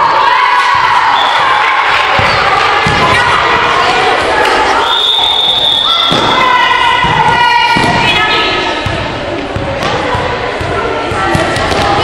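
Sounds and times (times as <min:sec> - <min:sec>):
children shouting: 0:00.0 - 0:08.6
ball bouncing on hall floor: 0:02.1 - 0:03.4, 0:06.0 - 0:12.0.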